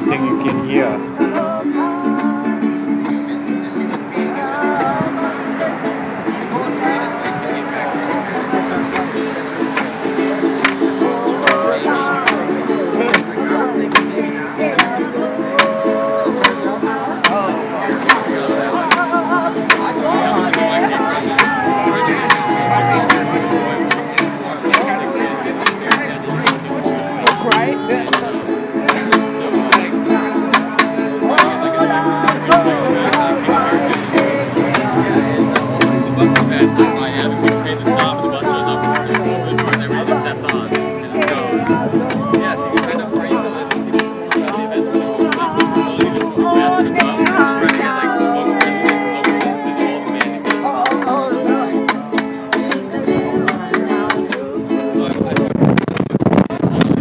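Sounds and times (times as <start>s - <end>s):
people singing along: 0.0s - 55.7s
strummed ukulele: 0.0s - 57.0s.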